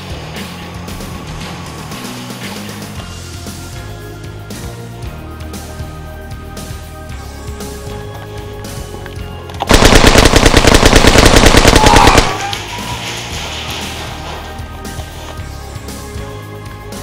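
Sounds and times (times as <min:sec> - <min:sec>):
airsoft rifle full-auto burst: 0:09.7 - 0:12.5
quiet background music: 0:12.2 - 0:17.0.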